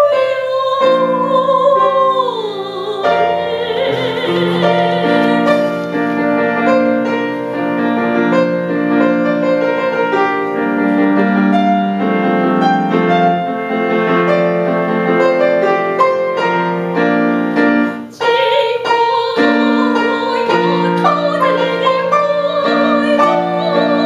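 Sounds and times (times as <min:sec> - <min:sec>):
woman singing classical vibrato: 0:00.0 - 0:08.3, 0:16.4 - 0:24.0
grand piano playing: 0:00.0 - 0:24.0.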